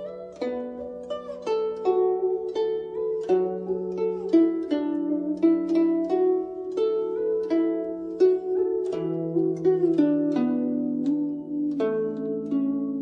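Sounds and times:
plucked zither melody: 0.0s - 13.0s.

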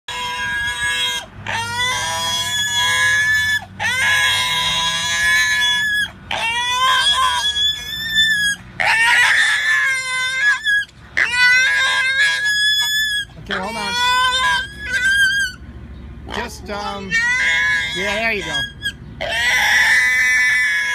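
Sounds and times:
pig squealing: 0.1s - 20.9s.

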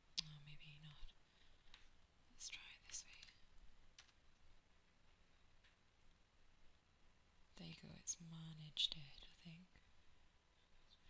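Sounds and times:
soft breaths: 0.1s - 3.8s, 7.6s - 11.0s.

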